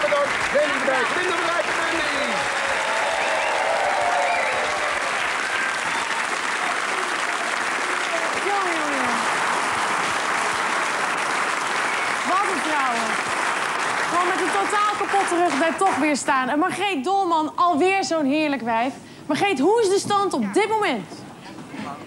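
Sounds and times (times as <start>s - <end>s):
audience applauding: 0.0s - 16.3s.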